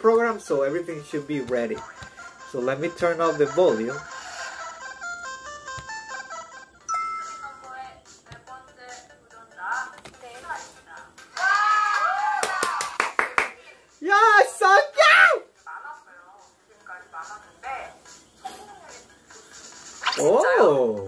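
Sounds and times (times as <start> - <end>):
music: 0.0 - 21.0
electronic jingle: 6.9 - 7.6.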